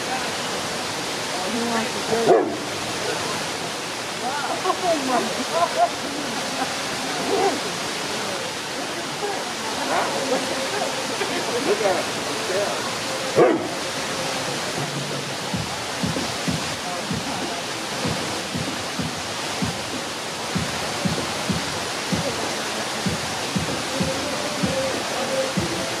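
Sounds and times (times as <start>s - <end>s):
waterfall rushing: 0.0s - 26.0s
low thuds: 14.8s - 17.4s, 18.1s - 20.0s.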